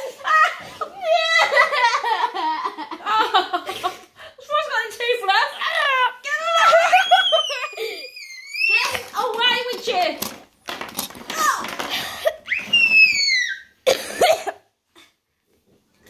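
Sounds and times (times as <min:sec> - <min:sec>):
toddler squealing and laughing: 0:06.6 - 0:09.1, 0:12.4 - 0:13.8.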